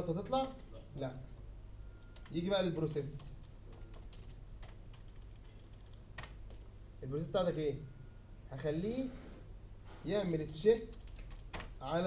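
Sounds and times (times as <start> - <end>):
keyboard typing: 2.0 - 6.7, 10.8 - 11.8.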